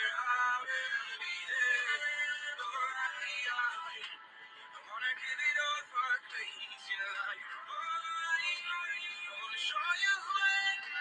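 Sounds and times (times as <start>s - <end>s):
pop love song singing: 0.0s - 11.0s.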